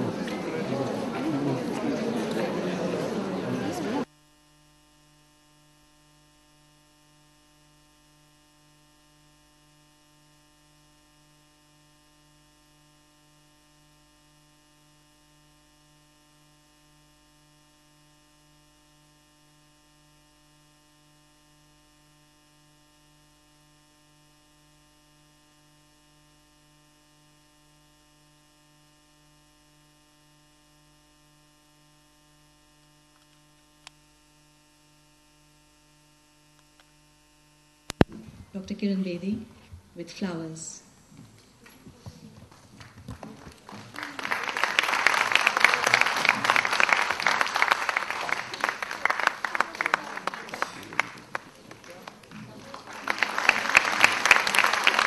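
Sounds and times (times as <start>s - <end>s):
faint electrical hum: 0.0s - 55.0s.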